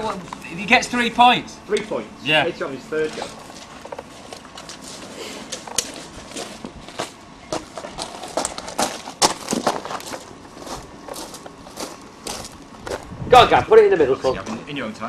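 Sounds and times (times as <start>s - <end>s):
footsteps crunching: 2.9s - 13.2s.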